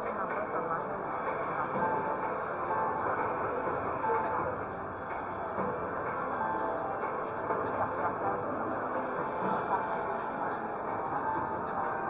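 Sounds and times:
background music: 0:00.0 - 0:12.0
dense din of room: 0:00.0 - 0:12.0.

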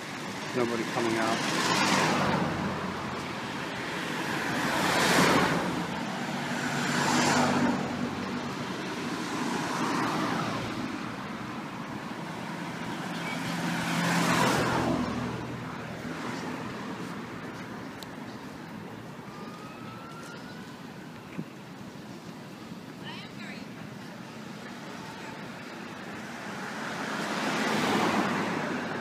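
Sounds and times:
cars passing by: 0:00.0 - 0:29.0.

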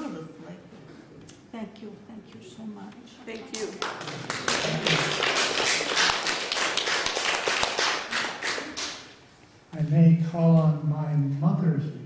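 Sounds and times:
audience applauding: 0:03.5 - 0:09.2.

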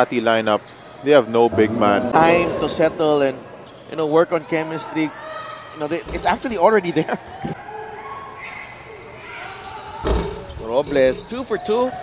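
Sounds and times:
arena crowd murmur: 0:00.9 - 0:10.4.

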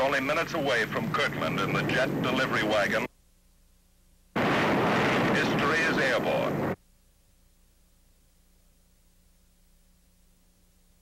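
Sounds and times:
jet engines rushing: 0:04.4 - 0:06.8.

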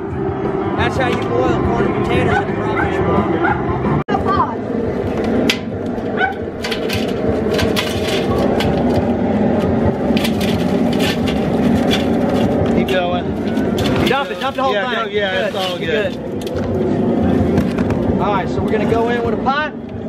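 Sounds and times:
steady low rumble: 0:00.0 - 0:20.0.

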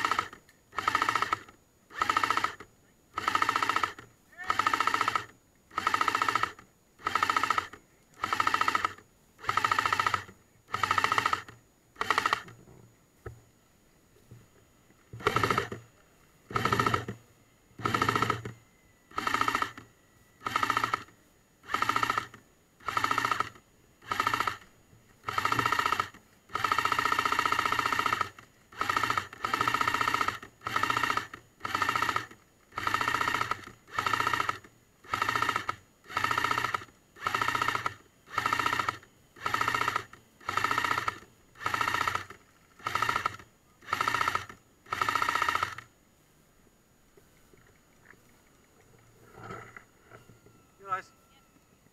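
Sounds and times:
airsoft gun automatic bursts: 0:00.0 - 0:12.6, 0:15.2 - 0:15.8, 0:16.5 - 0:17.2, 0:17.8 - 0:45.9.

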